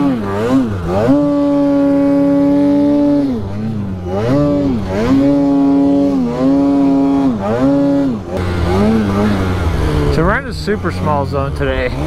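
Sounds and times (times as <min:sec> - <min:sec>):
snowmobile engine revving: 0:00.0 - 0:12.0.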